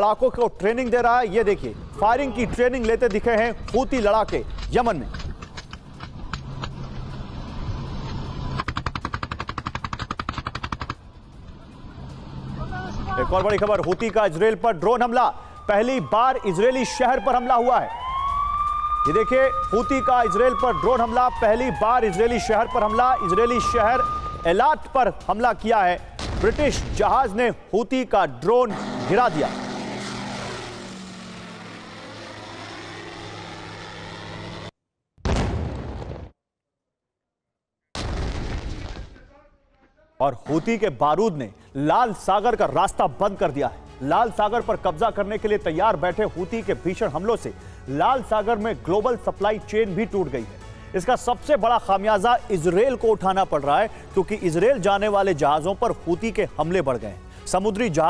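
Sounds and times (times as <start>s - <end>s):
drone engine buzzing: 28.6s - 34.7s.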